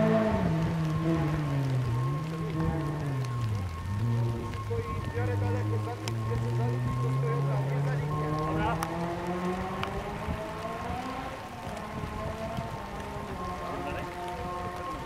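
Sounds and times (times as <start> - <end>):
car engine accelerating: 0.0 - 15.0
tyres hissing on wet road: 0.0 - 15.0.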